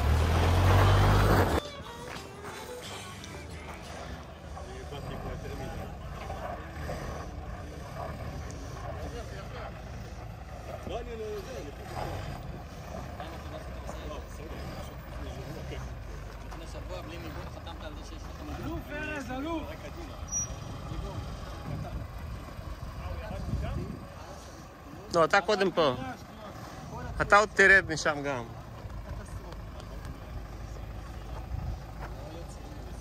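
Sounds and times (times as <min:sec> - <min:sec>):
off-road vehicle engine rumbling: 0:00.0 - 0:33.0
people's voices: 0:00.0 - 0:33.0.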